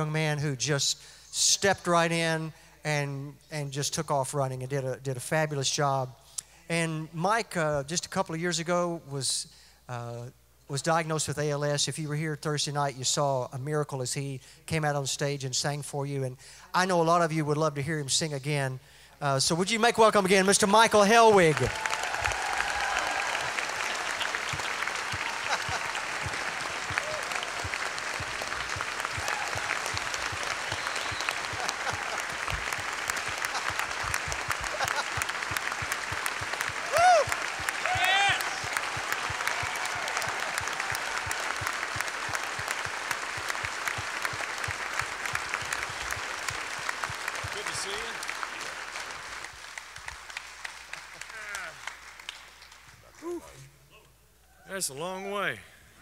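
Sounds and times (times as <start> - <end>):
audience applauding: 20.8 - 53.0.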